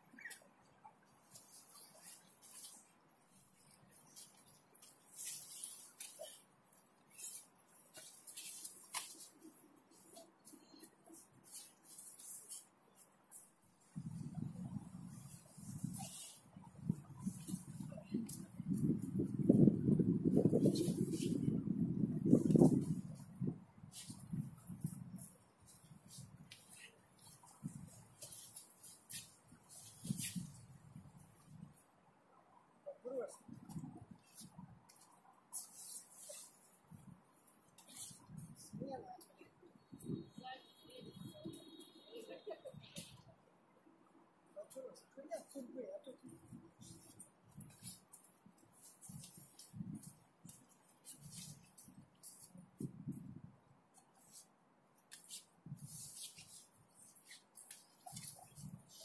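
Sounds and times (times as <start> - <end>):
scuffs and swishes on turf: 1.1 - 31.8, 33.7 - 38.8, 46.2 - 53.4, 54.0 - 59.0.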